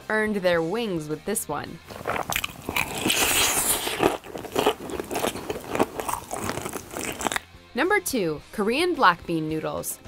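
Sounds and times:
crunching fried chicken: 1.9s - 7.4s.

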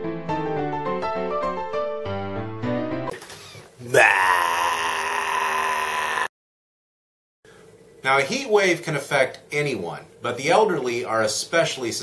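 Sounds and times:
drawn-out wailing cry: 3.9s - 6.3s.

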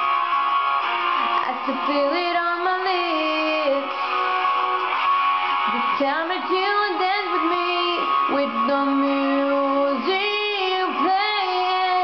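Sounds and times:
pop ballad with strummed guitar: 0.0s - 12.0s.

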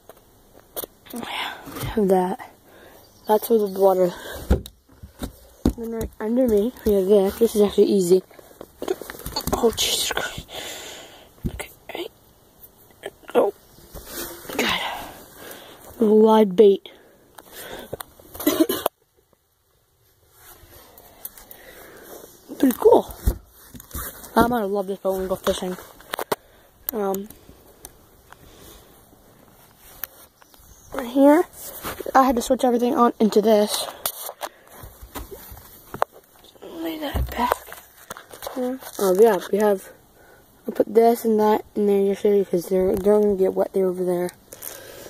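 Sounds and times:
breathy exhales: 10.3s - 11.4s, 20.8s - 22.4s.

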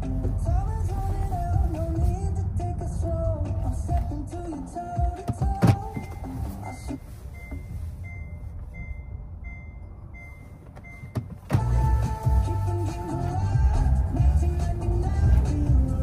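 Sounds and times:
background music: 0.0s - 6.9s, 11.6s - 16.0s
car cabin noise: 0.0s - 16.0s
short high beeps: 5.9s - 11.2s.

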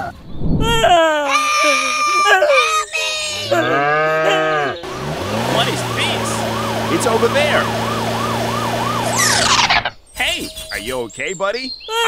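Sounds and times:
farm animal bleating: 2.5s - 4.8s
wailing siren: 3.6s - 9.9s.

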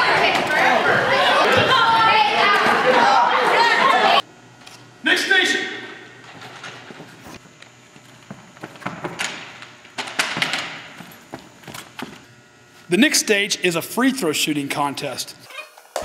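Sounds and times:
thumps and knocks echoing in gym: 7.9s - 12.2s.

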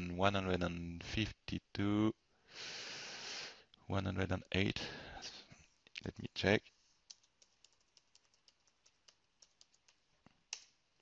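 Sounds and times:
keyboard typing: 7.0s - 11.0s.

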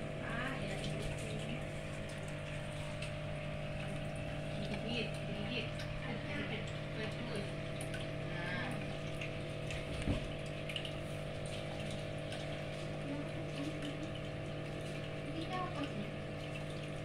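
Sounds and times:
faint watery wash: 0.0s - 17.0s.

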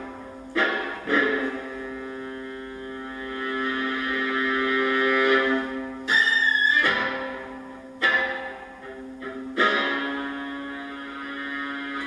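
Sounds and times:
bowed viola: 0.0s - 12.0s.

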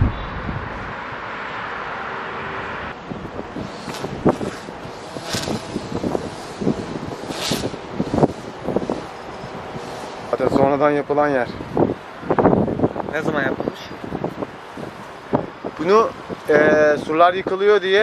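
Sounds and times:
wind buffeting microphone: 0.0s - 1.2s, 2.9s - 18.0s
distant traffic hum: 0.0s - 18.0s.

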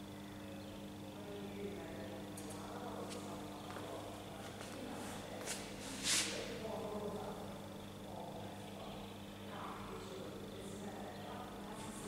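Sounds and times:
steady electrical hum: 0.0s - 12.0s
distant voices murmuring: 0.1s - 12.0s.

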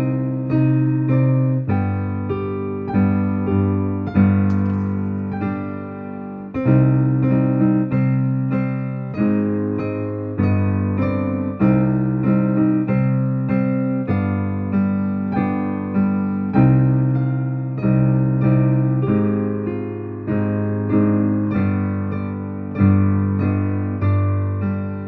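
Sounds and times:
slow digital piano melody: 0.0s - 25.0s.

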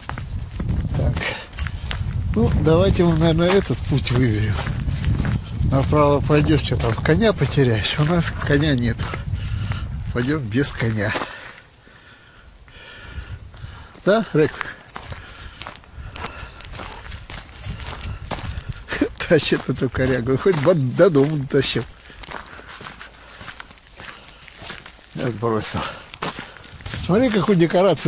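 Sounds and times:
footsteps crunching on gravel: 0.0s - 11.8s, 13.2s - 28.0s
man speaking: 0.9s - 1.6s, 2.3s - 4.7s, 5.6s - 9.2s, 10.1s - 11.4s, 14.0s - 14.9s, 18.9s - 21.9s, 25.1s - 26.1s, 26.9s - 28.0s.

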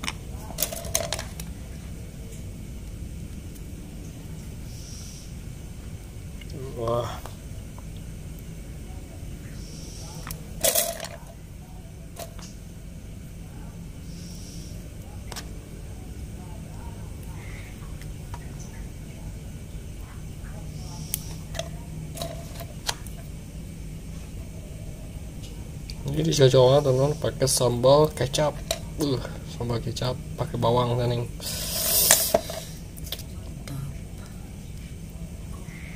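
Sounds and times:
steady low hum: 0.0s - 35.9s.

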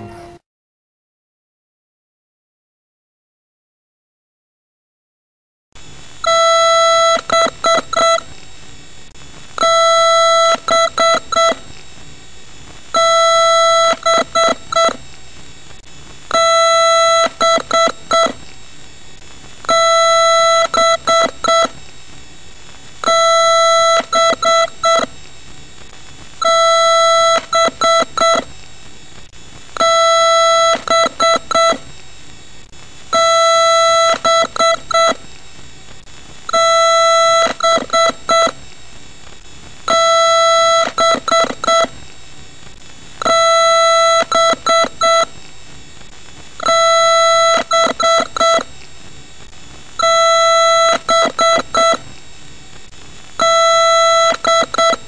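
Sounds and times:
electronic beeper beeps: 16.3s - 18.4s, 19.7s - 21.8s, 26.4s - 28.5s, 36.5s - 38.6s, 43.2s - 45.3s, 46.6s - 48.7s, 50.0s - 52.0s, 53.4s - 55.0s.

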